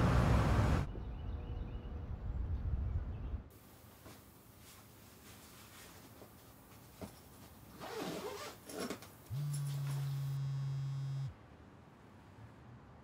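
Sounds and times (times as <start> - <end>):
fabric and bag rustling: 4.1 - 10.2
mobile phone vibrating: 9.3 - 11.3.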